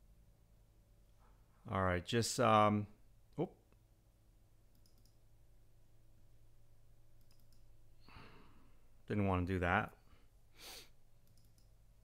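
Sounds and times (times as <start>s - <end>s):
faint clicks: 4.7s - 5.2s, 7.2s - 7.7s, 11.2s - 11.8s.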